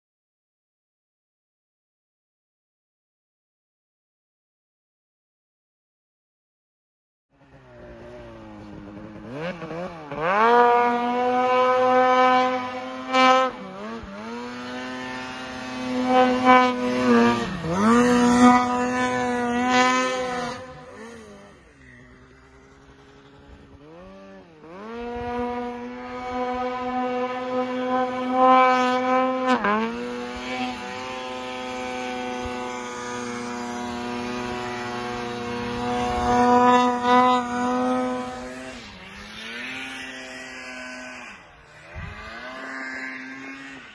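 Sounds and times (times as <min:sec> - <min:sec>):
snowmobile engine revving: 0:07.4 - 0:43.9.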